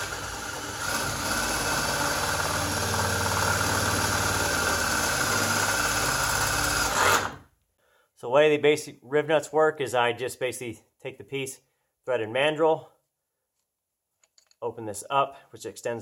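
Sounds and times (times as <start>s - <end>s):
power drill boring through metal: 0.0s - 7.4s.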